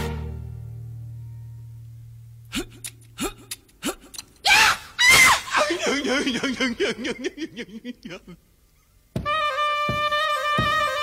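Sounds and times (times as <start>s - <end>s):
loud vocal cry: 3.2s - 6.7s.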